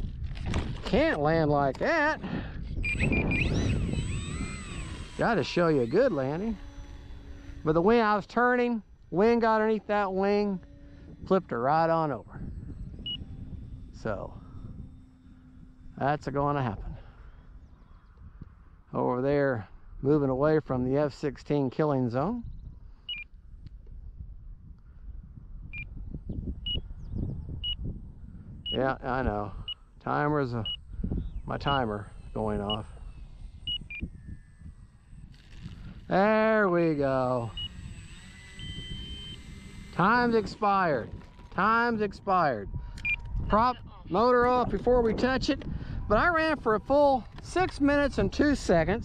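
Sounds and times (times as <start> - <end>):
gusty wind on microphone: 0.0 - 21.2, 22.2 - 49.0
faint whistling glides: 2.7 - 7.8, 17.0 - 18.9, 29.6 - 36.1, 37.3 - 40.5
short high beeps: 2.8 - 4.4, 23.1 - 23.3, 31.6 - 35.0, 43.0 - 43.8
timer beeping: 30.6 - 35.1, 37.3 - 39.9, 43.0 - 43.8.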